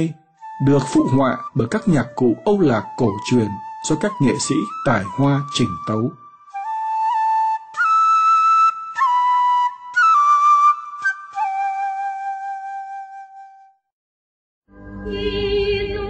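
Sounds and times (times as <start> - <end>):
flute playing slow melody: 0.1 - 13.9.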